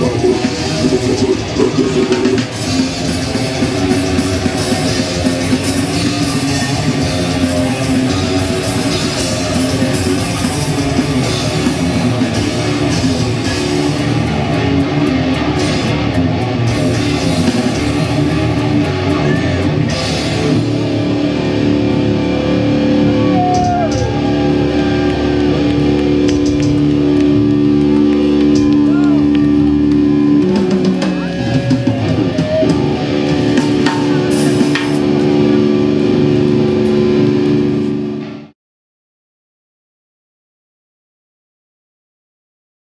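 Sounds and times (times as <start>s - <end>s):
death metal band playing: 0.0s - 38.5s.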